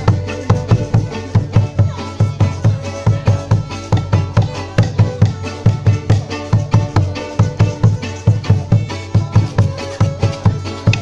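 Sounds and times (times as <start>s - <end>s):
plucked strings: 0.0s - 11.0s
steady drum beat: 0.0s - 11.0s
violin: 0.0s - 11.0s.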